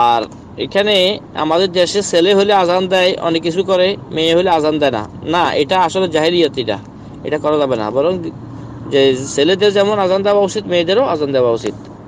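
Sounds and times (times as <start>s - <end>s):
man speaking: 0.0s - 11.8s.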